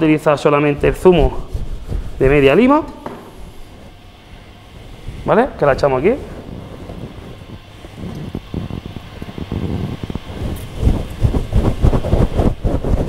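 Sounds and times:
wind buffeting microphone: 0.8 - 13.0.

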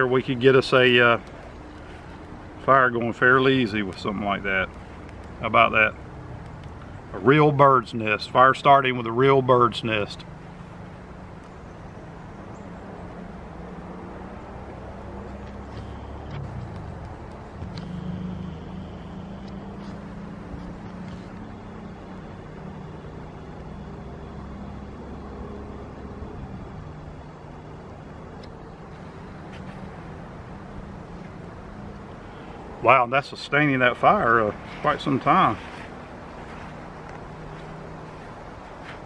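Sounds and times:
burning twigs crackling: 0.0 - 25.2, 26.5 - 39.0
distant traffic rumble: 0.0 - 39.0.

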